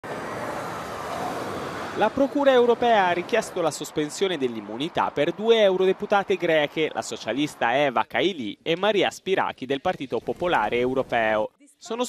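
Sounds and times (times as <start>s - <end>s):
bus driving past: 0.0s - 7.7s
passing cars: 0.0s - 8.0s.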